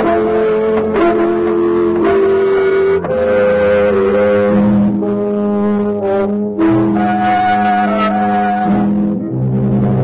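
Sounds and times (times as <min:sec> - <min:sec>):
low held chords music: 0:00.0 - 0:10.0.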